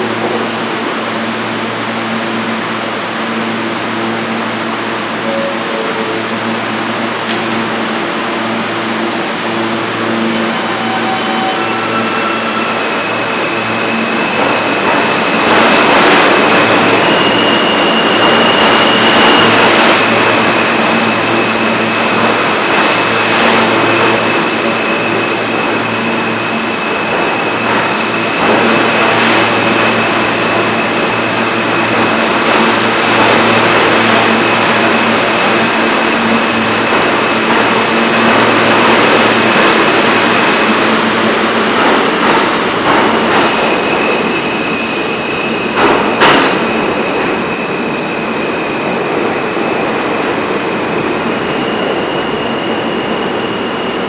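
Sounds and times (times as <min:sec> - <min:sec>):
subway train wheels rumbling on rails: 0:00.0 - 0:54.0
higher tone: 0:05.1 - 0:07.9.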